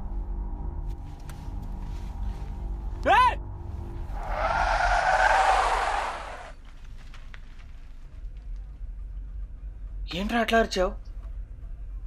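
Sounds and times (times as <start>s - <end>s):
car tyres screeching: 4.0s - 6.6s.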